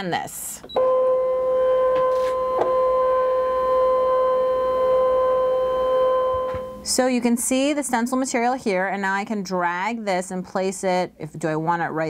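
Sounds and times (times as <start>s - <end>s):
cutting machine motor whine: 0.8s - 6.8s.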